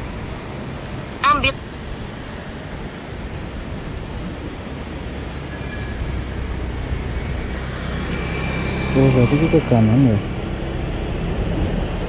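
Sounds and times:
rushing wind and road noise: 0:00.0 - 0:12.0
scooter engine hum: 0:00.0 - 0:12.0.

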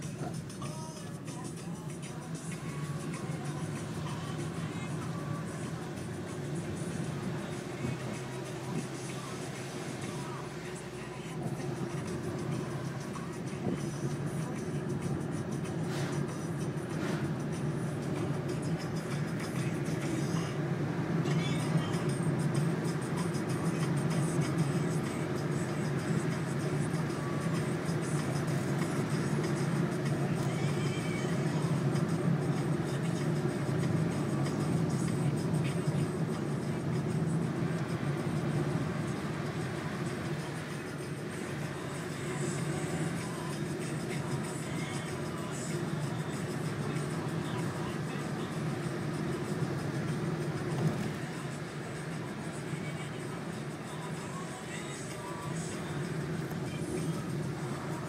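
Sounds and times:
car engine and tyre drone: 0:00.0 - 0:58.0
faint music: 0:00.0 - 0:58.0.

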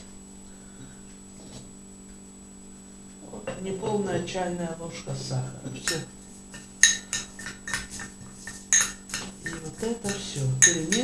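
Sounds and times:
teaspoon clinking against glass bowl: 0:05.8 - 0:11.0.

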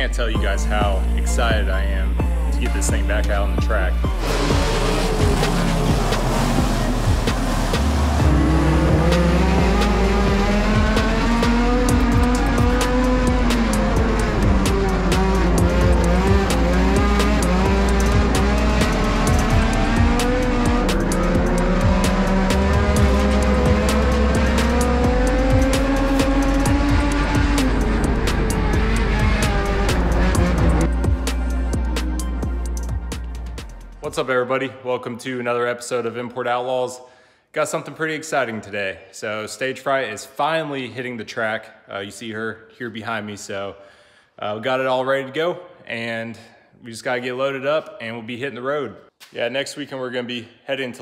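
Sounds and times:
background music with heavy bass: 0:00.0 - 0:34.2
race car engine revving: 0:04.1 - 0:33.6.

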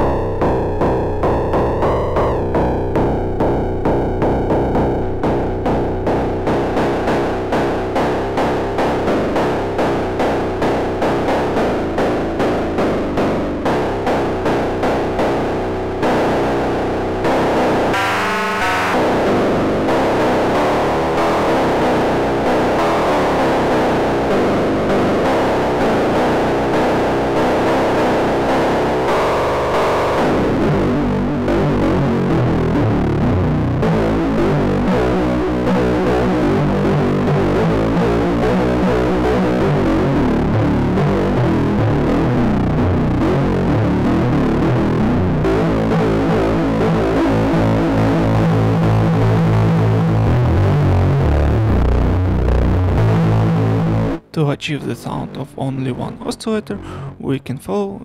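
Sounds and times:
distorted buzzy synth notes: 0:00.0 - 0:54.4.

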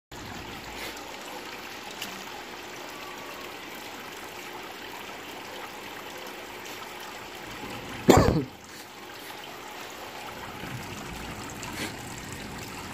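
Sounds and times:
water trickling into tank: 0:00.1 - 0:12.9.

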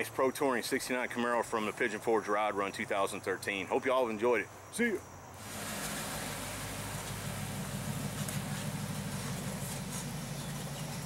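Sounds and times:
car engine low rumble: 0:05.4 - 0:11.0.

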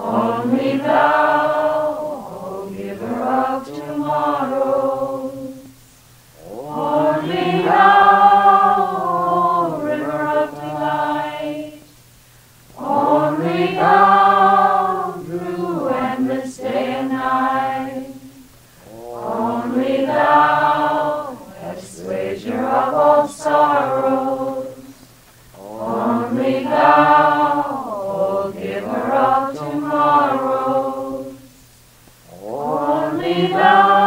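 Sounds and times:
voices chanting in unison: 0:00.0 - 0:11.9, 0:12.7 - 0:34.0.

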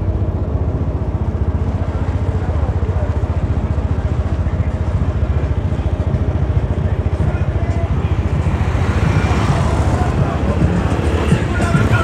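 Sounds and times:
small motorcycle engine running: 0:00.0 - 0:12.0.

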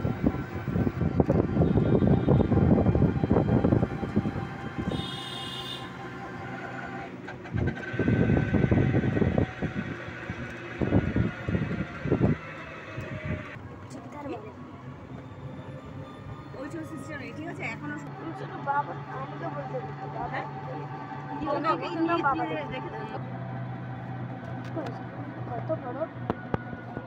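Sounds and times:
wind buffeting microphone: 0:00.0 - 0:04.9, 0:07.5 - 0:13.6
road noise: 0:00.0 - 0:27.0.

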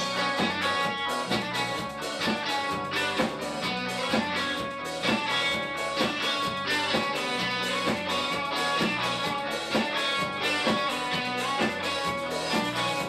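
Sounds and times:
bass guitar: 0:00.0 - 0:13.0
drum beat: 0:00.0 - 0:13.0
electric guitars strumming chords: 0:00.0 - 0:13.0.

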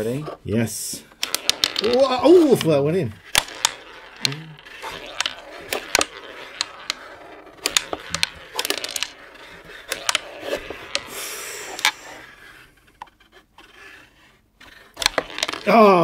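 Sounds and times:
sharp clicks of plastic ball: 0:01.1 - 0:11.1, 0:14.7 - 0:15.7
strikers scraping across board: 0:01.2 - 0:15.7.

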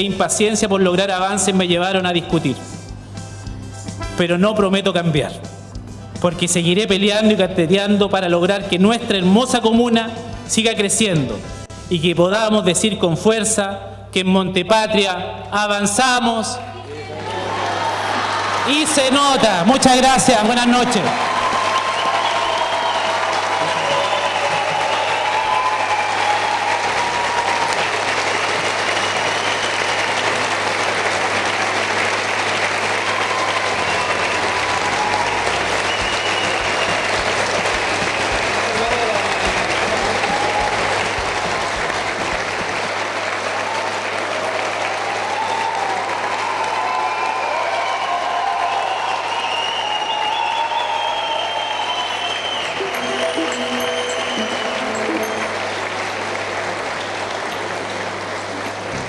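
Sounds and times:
audience applauding: 0:16.9 - 0:59.0.

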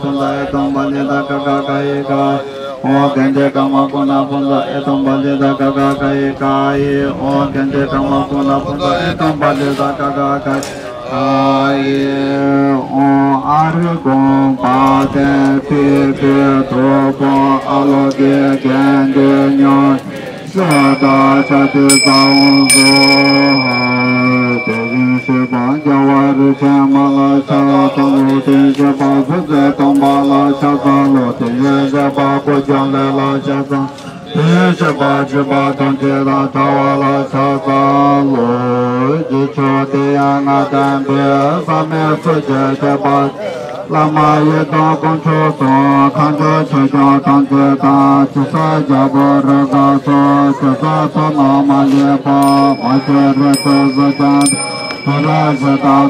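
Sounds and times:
monks chanting: 0:00.0 - 0:56.0.

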